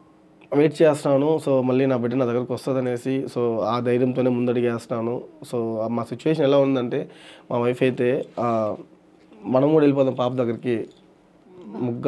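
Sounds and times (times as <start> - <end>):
man speaking: 0.5 - 11.0, 11.6 - 12.0.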